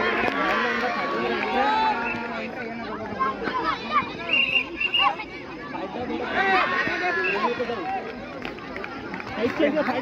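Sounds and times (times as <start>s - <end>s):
crowd chatter: 0.0s - 10.0s
voices shouting and calling: 0.0s - 10.0s.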